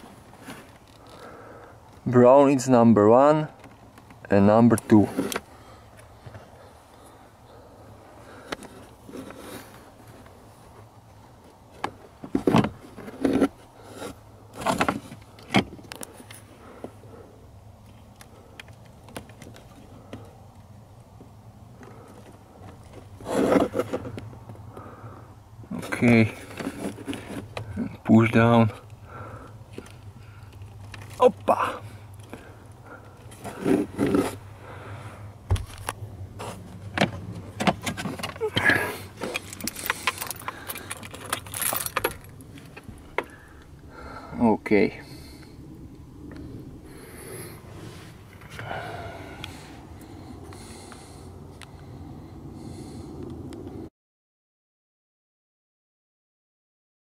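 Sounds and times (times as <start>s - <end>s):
low steady background noise: 0.0s - 53.9s
plastic scraping rustle: 22.8s - 24.2s, 25.8s - 27.8s, 33.3s - 34.5s.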